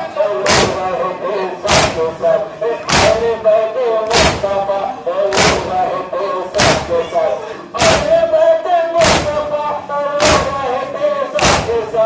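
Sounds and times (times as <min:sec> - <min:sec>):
voices chanting a lament: 0:00.0 - 0:12.0
crowd beating chests: 0:00.4 - 0:03.4, 0:04.0 - 0:07.2, 0:07.8 - 0:08.3, 0:08.9 - 0:12.0.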